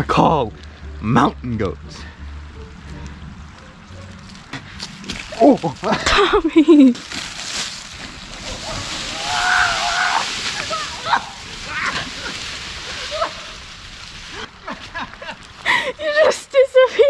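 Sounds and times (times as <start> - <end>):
dirt and leaves rustling: 0.0 - 16.9.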